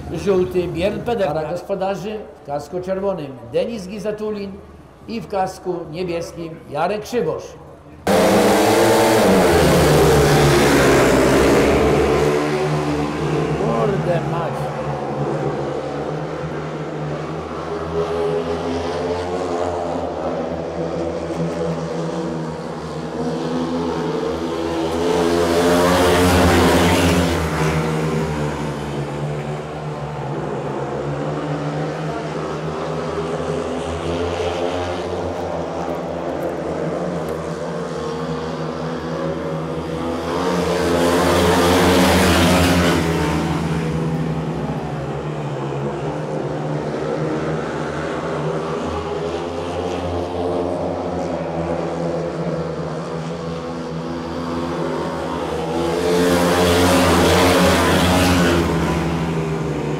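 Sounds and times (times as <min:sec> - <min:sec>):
motorcycles racing: 0:06.2 - 0:59.9.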